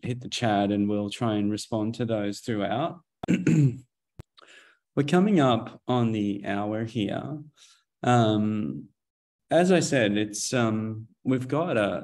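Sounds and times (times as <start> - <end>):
man clearing his throat: 3.2 - 3.9.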